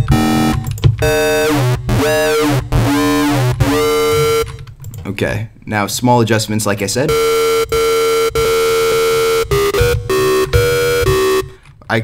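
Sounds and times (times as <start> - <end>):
buzzy synthesizer tone: 0.0 - 4.6, 7.1 - 11.6.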